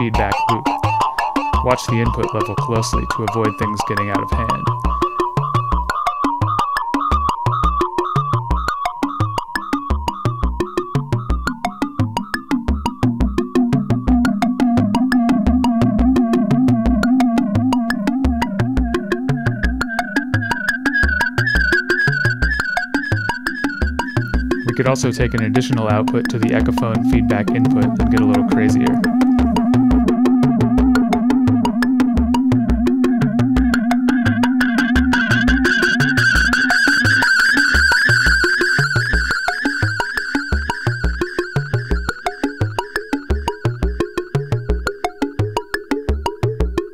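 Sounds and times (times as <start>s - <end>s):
ringing synth tones: 0.0s - 46.3s
low bass thumps: 10.0s - 20.0s, 23.8s - 36.6s.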